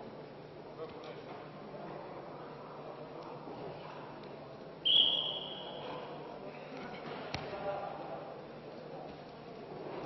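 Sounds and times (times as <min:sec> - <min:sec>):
crowd murmur in a hall: 0:00.0 - 0:10.0
referee's whistle: 0:04.8 - 0:05.8.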